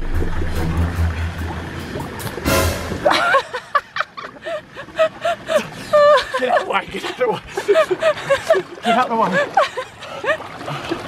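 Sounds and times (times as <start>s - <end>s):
low steady rumble: 0.0s - 6.2s.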